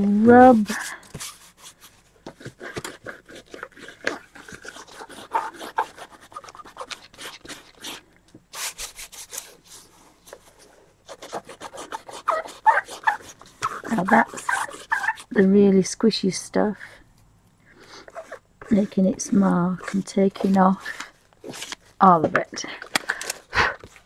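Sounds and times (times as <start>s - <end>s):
scratchy rubbing on paper: 0.6s - 15.4s, 17.8s - 21.8s.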